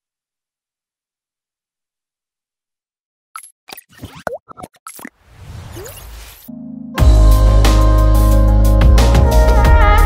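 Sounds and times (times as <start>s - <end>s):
sound effect pops and clicks: 3.4s - 6.3s.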